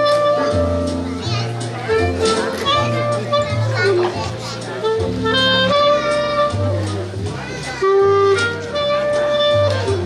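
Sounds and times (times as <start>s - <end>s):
clarinet playing jazz melody: 0.0s - 1.2s, 1.8s - 10.0s
low bass notes: 0.0s - 10.0s
children's voices: 0.1s - 9.2s.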